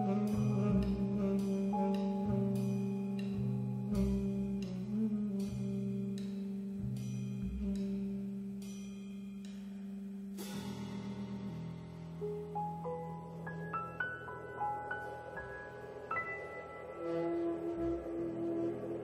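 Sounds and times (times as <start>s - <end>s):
cymbal strokes: 0.0s - 13.6s
bass notes: 0.0s - 19.0s
jazz quartet playing: 0.0s - 19.0s
long held low tone: 16.1s - 19.0s.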